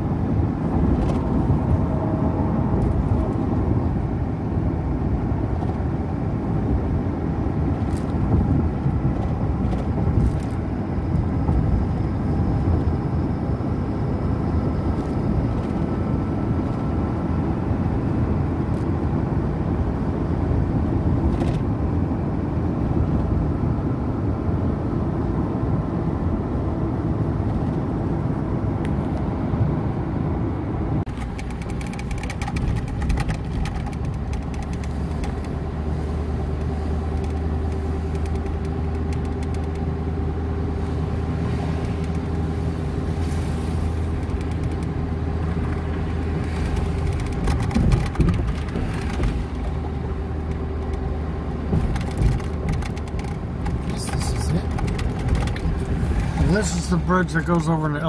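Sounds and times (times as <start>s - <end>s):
car cabin road and engine noise: 0.0s - 58.0s.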